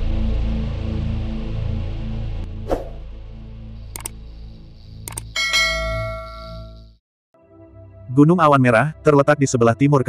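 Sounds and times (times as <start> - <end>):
quick clicks: 3.9 - 4.2, 5.0 - 5.4
bell ding: 5.4 - 6.9.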